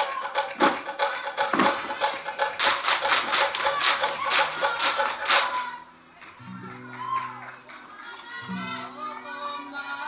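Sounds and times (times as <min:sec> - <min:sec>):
group clapping in unison: 0:00.0 - 0:09.8.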